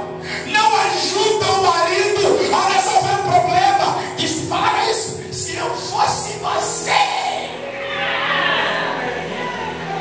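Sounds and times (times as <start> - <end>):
preacher shouting: 6.0 - 10.0.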